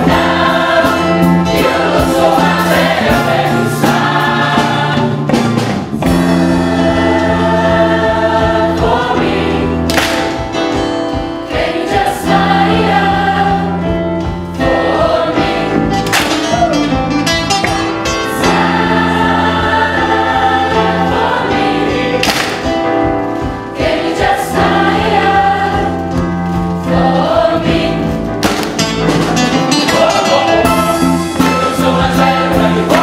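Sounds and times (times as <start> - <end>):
choir singing in harmony: 0.0 - 10.0, 11.1 - 16.0, 18.3 - 28.4, 29.2 - 33.0.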